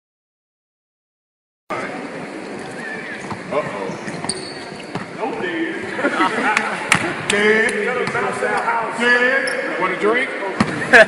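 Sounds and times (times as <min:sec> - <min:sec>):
shoe squeak: 0:02.6 - 0:05.1, 0:09.4 - 0:09.8.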